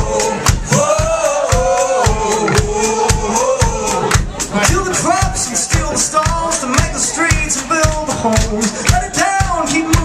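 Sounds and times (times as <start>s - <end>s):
live rock band playing: 0.0s - 10.0s
person singing: 0.0s - 10.0s.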